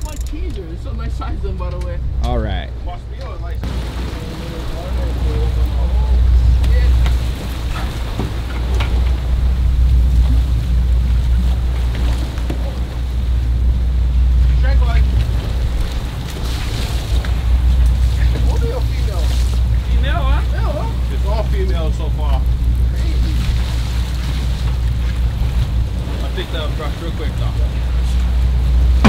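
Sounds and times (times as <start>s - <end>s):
boat engine rumbling: 0.0s - 29.0s
water rushing past hull: 0.0s - 29.0s
wind buffeting microphone: 0.0s - 29.0s.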